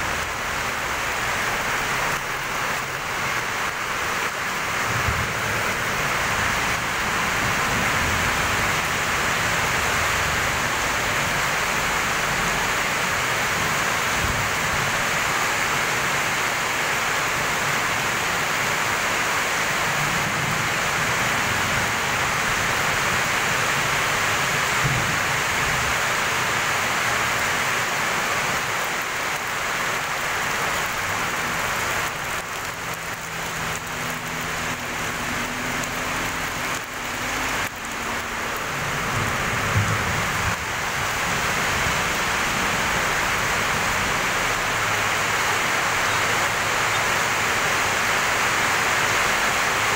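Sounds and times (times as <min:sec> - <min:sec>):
heavy rain on pavement and roofs: 0:00.0 - 0:49.9.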